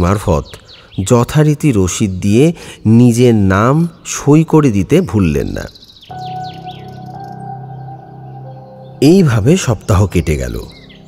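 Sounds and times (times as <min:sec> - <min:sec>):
bird chirps: 0:00.0 - 0:02.0, 0:02.7 - 0:11.0
held chord of music: 0:06.1 - 0:11.0.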